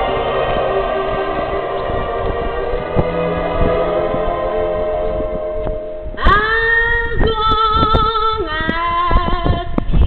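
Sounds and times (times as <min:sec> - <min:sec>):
woman singing with vibrato: 0:00.0 - 0:09.8.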